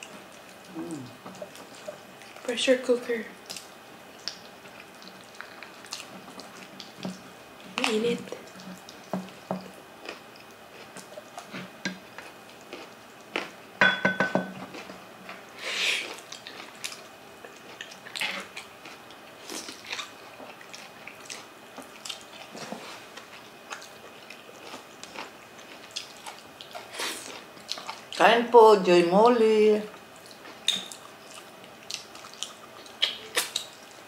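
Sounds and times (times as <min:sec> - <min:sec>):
wet chewing and smacking: 0:00.0 - 0:02.5, 0:03.4 - 0:13.6, 0:14.7 - 0:28.2, 0:29.9 - 0:34.0.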